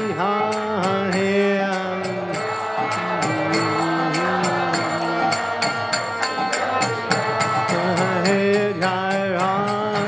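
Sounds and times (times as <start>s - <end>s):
devotional chanting: 0.0s - 10.0s
hand cymbals striking: 0.0s - 10.0s.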